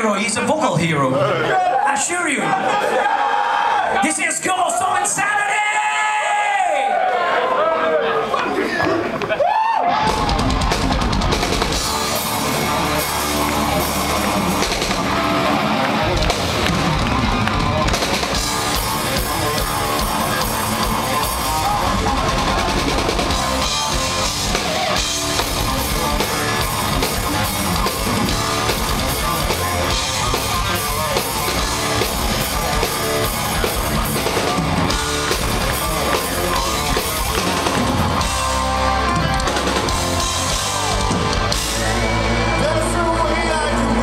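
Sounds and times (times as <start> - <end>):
drum kit: 9.9 - 44.0
metal band playing loud: 9.9 - 44.0
distorted electric guitar: 10.0 - 44.0.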